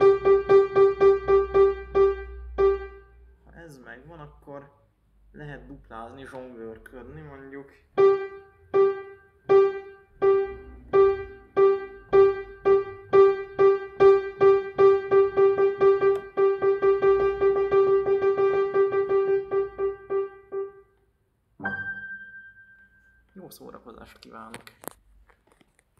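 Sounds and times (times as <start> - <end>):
piano key struck repeatedly: 0.0 - 3.1, 8.0 - 20.9, 21.6 - 22.8
higher piano note: 21.6 - 23.2.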